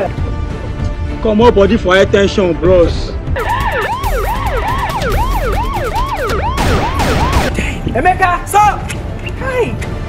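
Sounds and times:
police siren yelping: 0:03.4 - 0:07.6.

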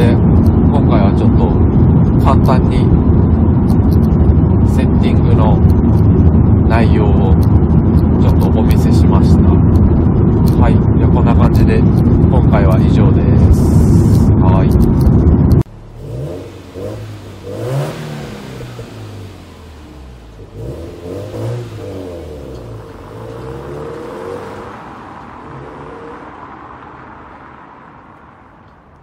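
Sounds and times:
loud engine noise inside car: 0:00.0 - 0:28.5
car engine revving and pulling away: 0:00.0 - 0:28.8.

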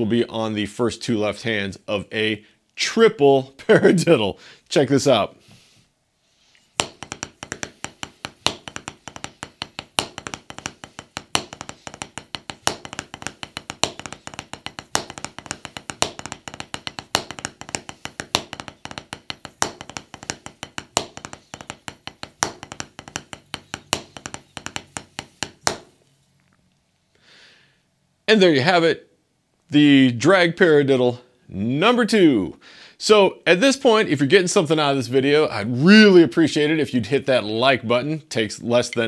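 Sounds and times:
drumsticks tapping on practice pad: 0:06.8 - 0:26.0.

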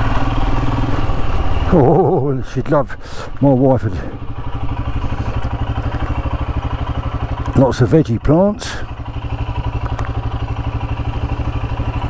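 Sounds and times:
single-cylinder engine running: 0:00.0 - 0:12.0.

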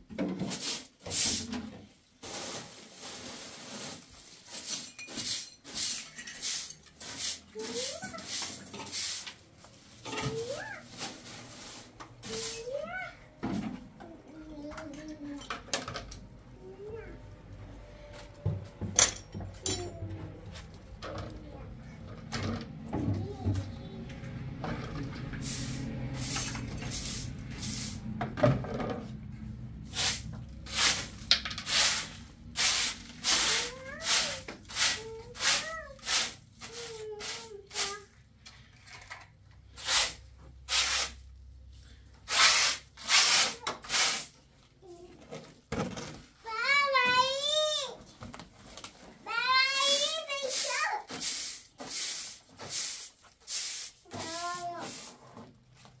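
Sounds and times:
hand broom sweeping floor: 0:00.2 - 0:13.1, 0:25.2 - 0:28.3, 0:29.8 - 0:38.2, 0:39.6 - 0:44.5, 0:49.3 - 0:56.0.

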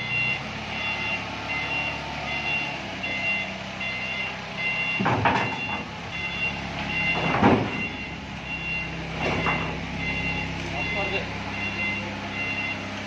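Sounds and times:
forklift engine running: 0:00.0 - 0:13.0
forklift reverse alarm beeping: 0:00.0 - 0:13.0.

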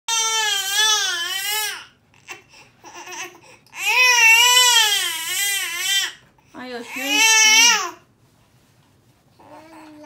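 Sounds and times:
newborn baby crying: 0:00.1 - 0:06.2, 0:06.8 - 0:08.1.

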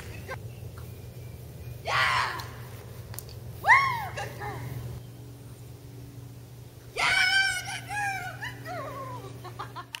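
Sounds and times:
woman calling: 0:06.9 - 0:09.6
woman squealing excitedly: 0:07.0 - 0:09.3.

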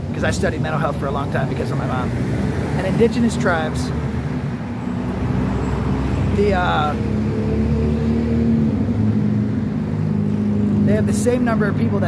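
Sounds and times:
rumble of passing vehicles: 0:00.0 - 0:12.0.

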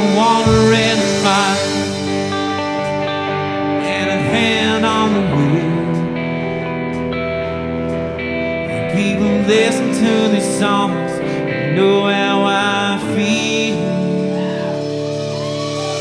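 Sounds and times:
country band playing live: 0:00.0 - 0:16.0
guitar melody with sliding bends: 0:00.0 - 0:16.0.

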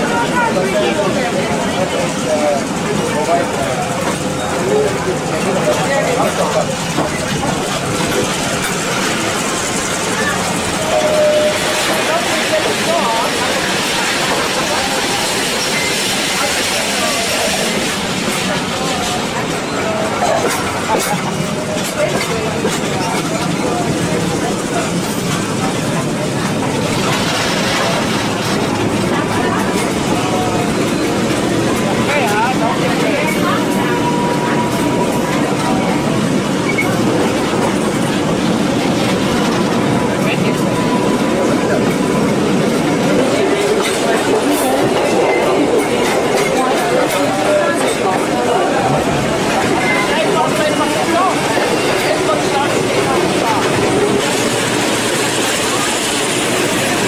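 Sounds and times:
train wheels rumbling on rails: 0:00.0 - 0:57.0.

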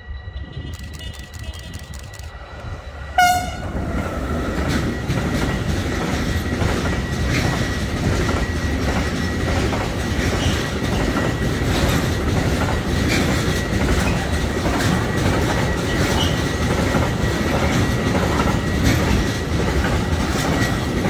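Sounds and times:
freight train rumble: 0:00.0 - 0:21.0
locomotive horn blast: 0:03.1 - 0:04.0
wheels clacking over rail joints: 0:03.2 - 0:21.0.

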